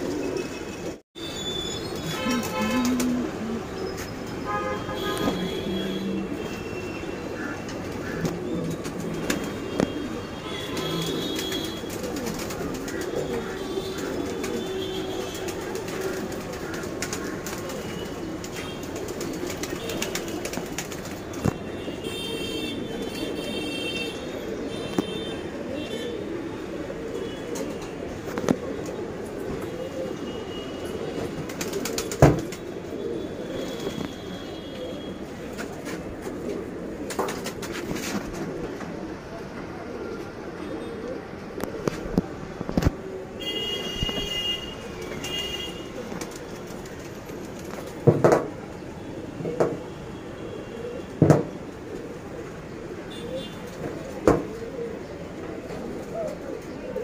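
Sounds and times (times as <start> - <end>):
pigeons cooing: 0.0 - 1.0, 1.6 - 57.0.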